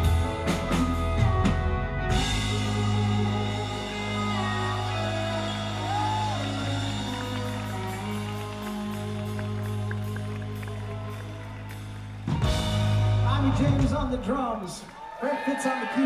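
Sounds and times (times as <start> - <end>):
crowd cheering: 0.0 - 16.0.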